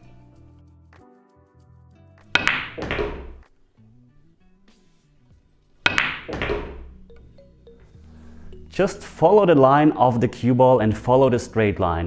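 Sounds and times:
quiet background music: 0:00.0 - 0:12.0
billiard balls knocking: 0:02.4 - 0:03.5, 0:05.8 - 0:07.1
pool cue striking ball: 0:02.4 - 0:03.5, 0:05.8 - 0:07.0.

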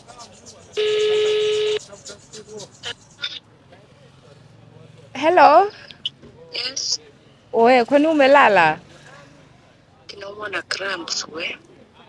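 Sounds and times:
phone ringback tone: 0:00.8 - 0:01.8.

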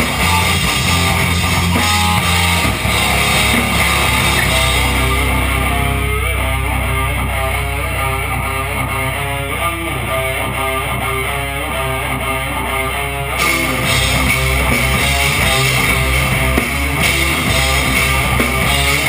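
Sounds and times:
drums: 0:00.0 - 0:19.0
electric guitar riff: 0:00.0 - 0:19.0.

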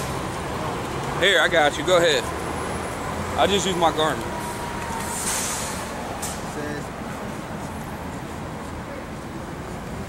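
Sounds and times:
street traffic rumble: 0:00.0 - 0:10.0
short hiss: 0:05.0 - 0:06.5.

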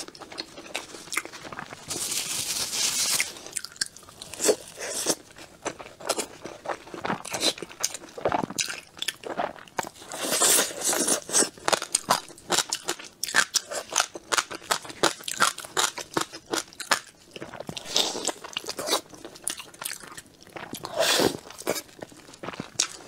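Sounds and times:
person chewing with wet mouth sounds: 0:00.0 - 0:01.9, 0:03.2 - 0:23.0.

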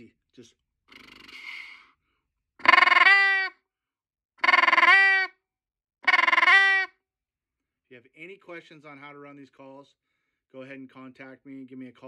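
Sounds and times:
goose call rattling notes: 0:02.6 - 0:03.5, 0:04.4 - 0:05.3, 0:06.0 - 0:06.9.

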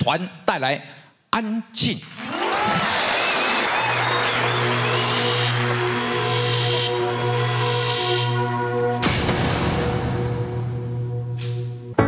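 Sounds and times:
stage music: 0:02.0 - 0:12.0
audience applauding: 0:02.2 - 0:07.0.

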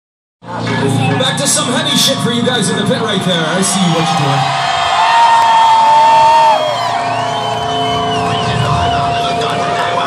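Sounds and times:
faint crowd cheering: 0:03.0 - 0:10.0
electric guitar feedback drone: 0:05.7 - 0:10.0
whistle-like tone sliding up: 0:07.0 - 0:09.4.

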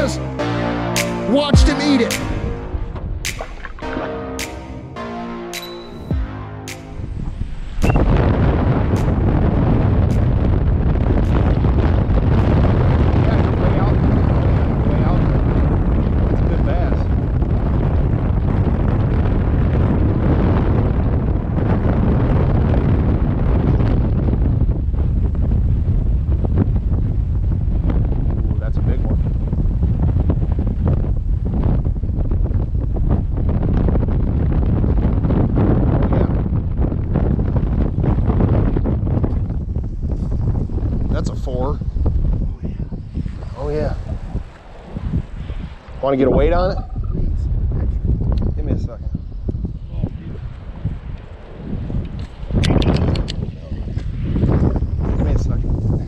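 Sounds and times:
wind buffeting microphone: 0:02.2 - 0:04.0, 0:06.9 - 0:56.0.

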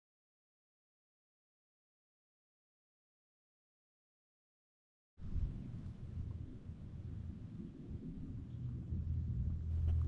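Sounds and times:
wind rumble on microphone: 0:05.2 - 0:10.0.

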